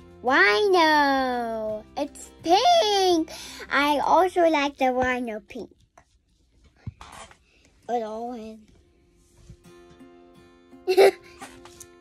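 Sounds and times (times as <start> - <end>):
child speaking: 0.2 - 5.7, 7.9 - 8.6.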